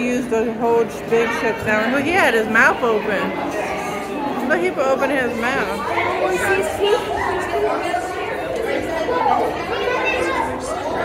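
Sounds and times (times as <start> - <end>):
chatter of voices in a hall: 0.0 - 11.0.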